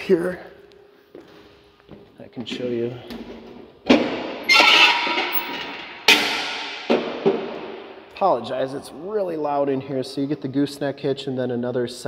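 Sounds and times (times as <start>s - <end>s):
loud ringing metal clangs: 4.2s - 8.8s.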